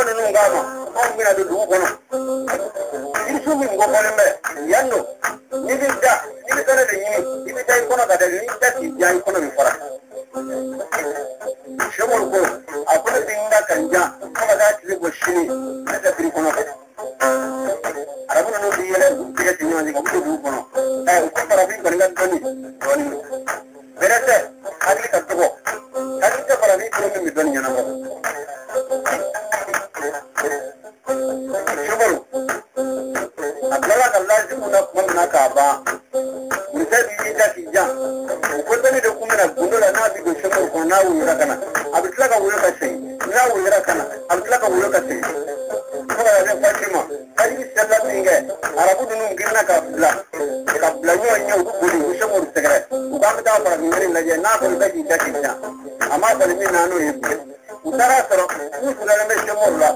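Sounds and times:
instrumental accompaniment: 0:00.0 - 0:59.9
man singing: 0:36.6 - 0:59.9.

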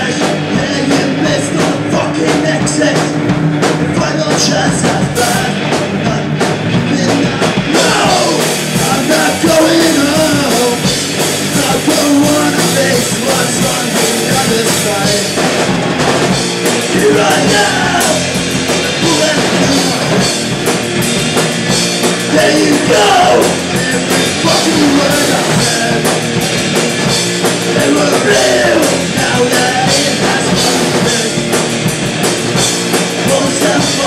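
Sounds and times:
bass guitar: 0:00.0 - 0:34.0
distorted electric guitars: 0:00.0 - 0:34.0
drum kit: 0:00.0 - 0:34.0.

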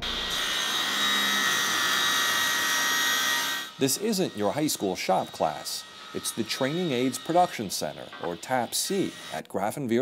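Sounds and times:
panel saw whining: 0:00.0 - 0:09.4.

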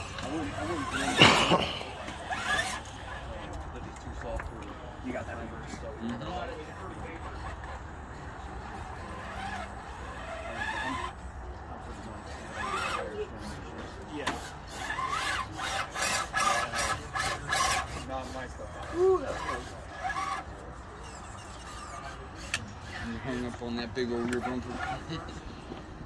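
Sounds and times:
tyres scraping on stone: 0:00.0 - 0:03.2, 0:14.3 - 0:18.4
rc car motor running: 0:00.0 - 0:25.8.

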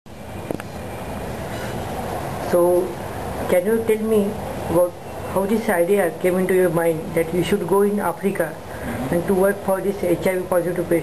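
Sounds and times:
room background noise: 0:00.1 - 0:11.0.

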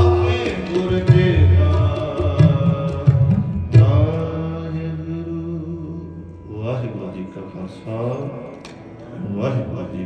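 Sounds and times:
harmonium chord held: 0:00.0 - 0:10.0.

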